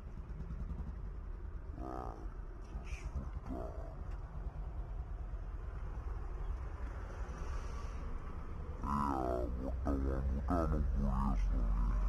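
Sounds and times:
street noise: 0.0s - 12.0s
drawn-out voice: 1.7s - 4.1s, 8.8s - 12.0s.

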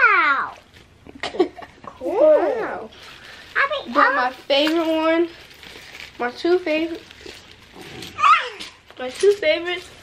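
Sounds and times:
plastic bag crinkling: 2.7s - 10.0s
child squealing: 8.2s - 8.8s.

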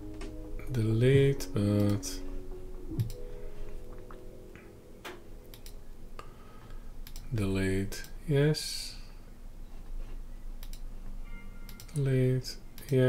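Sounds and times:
faint hum: 0.0s - 13.0s
computer mouse clicks: 3.0s - 3.2s, 5.5s - 5.8s, 10.6s - 10.9s.

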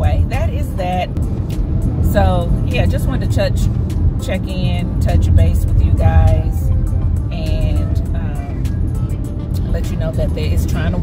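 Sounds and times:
car driving heard from inside: 0.0s - 11.0s.

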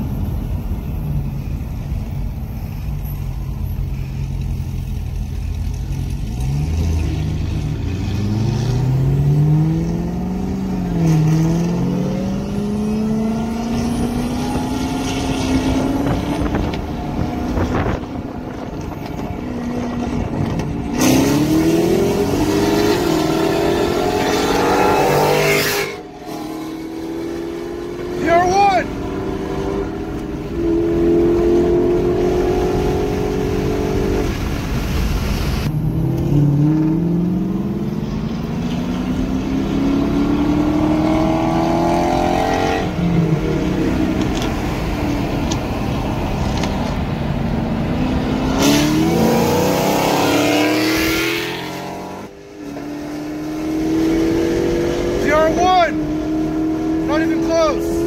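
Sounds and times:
car engines at full throttle: 0.0s - 58.0s.

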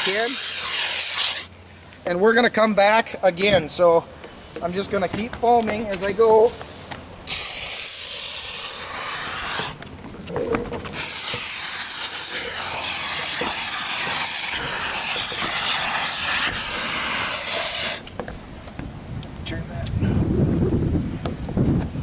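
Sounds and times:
spray foam gun hissing: 0.0s - 1.5s, 7.3s - 9.8s, 10.9s - 18.1s.

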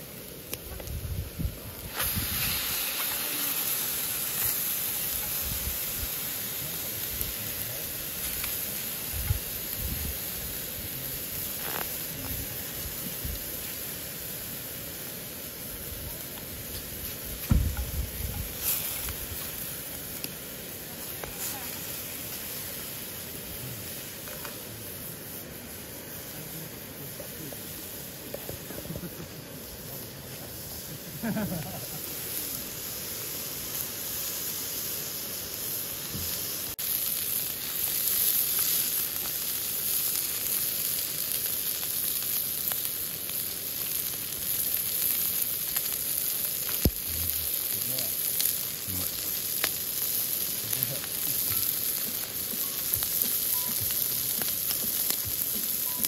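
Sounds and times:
meat sizzling in frying pan: 0.0s - 56.0s.

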